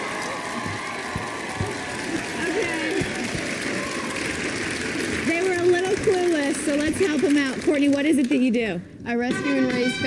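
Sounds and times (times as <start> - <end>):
audience applauding: 0.0 - 8.5.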